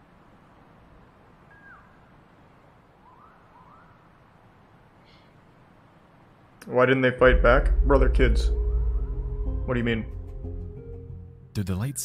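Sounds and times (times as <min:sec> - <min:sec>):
low hiss: 0:00.0 - 0:12.0
faint bird calls: 0:01.4 - 0:04.3.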